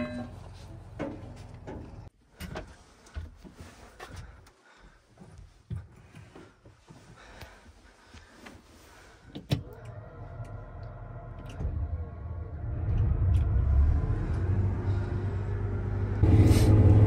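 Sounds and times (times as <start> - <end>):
combine engine rumble and whine: 9.3 - 17.0.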